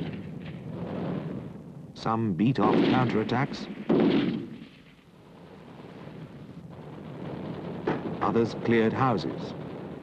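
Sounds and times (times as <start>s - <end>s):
gunshot blast: 0.0s - 1.5s, 2.6s - 5.0s, 7.3s - 10.0s
low noise: 0.0s - 10.0s.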